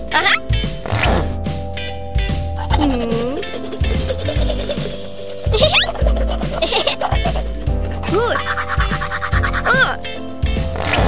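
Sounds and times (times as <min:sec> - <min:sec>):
cheerful background music: 0:00.0 - 0:11.0
tooth-brushing scrubbing: 0:03.5 - 0:10.0.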